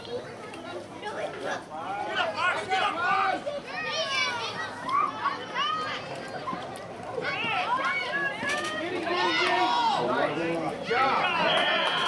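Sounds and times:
children and people shouting: 2.0s - 6.1s, 7.1s - 12.0s.

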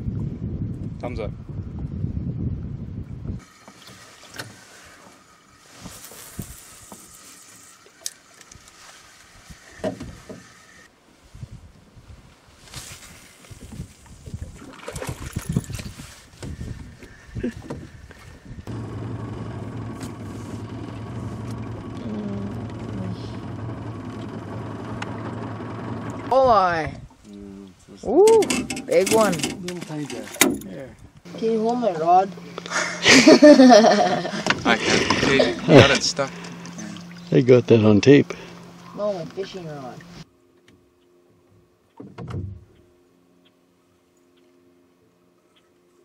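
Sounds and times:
wind rumble on microphone: 0.0s - 3.5s, 5.8s - 7.0s, 11.2s - 28.7s
boat motor droning: 18.6s - 26.9s, 31.3s - 41.9s.

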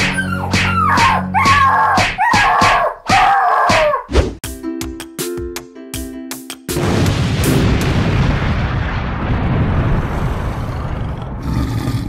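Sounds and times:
yelping cries: 0.0s - 4.1s
background music: 0.0s - 7.8s.

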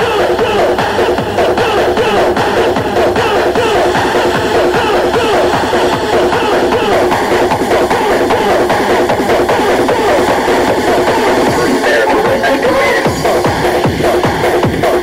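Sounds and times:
hardcore rave music: 0.0s - 15.0s.

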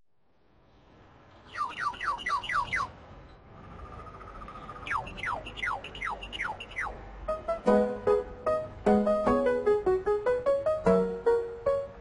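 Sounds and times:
steady held whistle: 4.8s - 7.0s.

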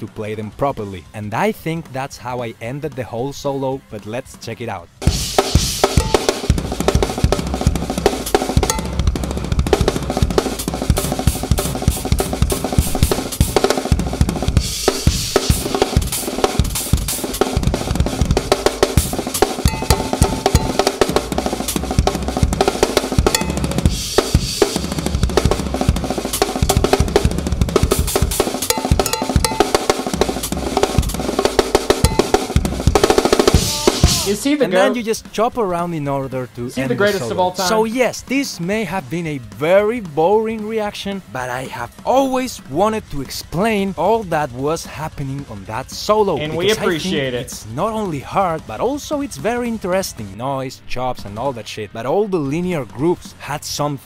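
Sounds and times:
fast drum kit solo: 5.0s - 34.6s.

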